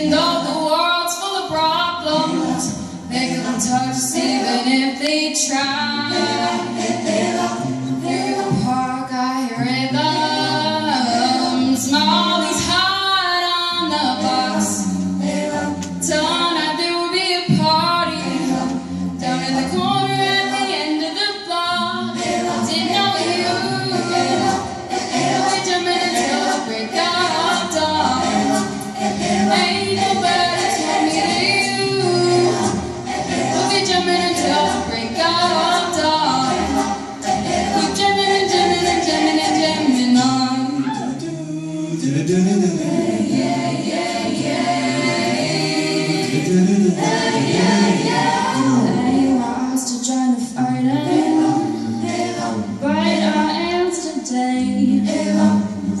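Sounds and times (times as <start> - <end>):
a cappella vocal ensemble singing: 0.0 - 56.0.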